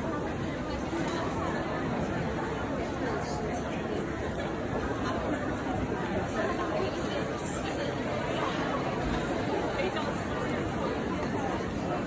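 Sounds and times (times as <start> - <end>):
chatter of many shoppers: 0.0 - 12.0.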